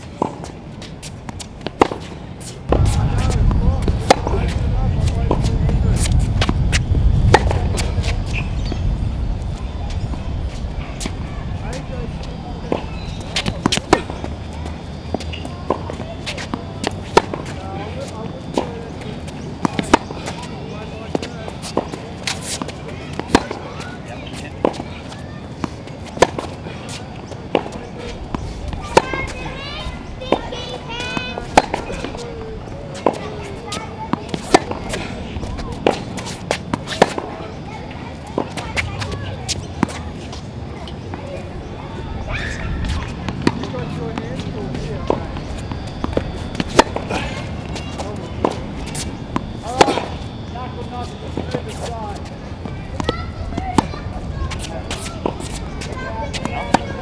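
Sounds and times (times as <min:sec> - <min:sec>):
tennis ball off racket: 0:00.1 - 0:08.8, 0:12.7 - 0:14.3, 0:14.9 - 0:29.4, 0:30.3 - 0:32.3, 0:32.9 - 0:37.4, 0:42.4 - 0:50.3, 0:52.9 - 0:57.0
wind rumble on microphone: 0:02.7 - 0:14.2
ball bouncing on court: 0:30.3 - 0:32.2.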